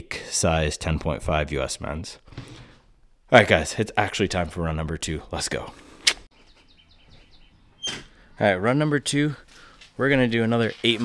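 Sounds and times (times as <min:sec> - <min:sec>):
small bird chirping: 0:06.3 - 0:08.4.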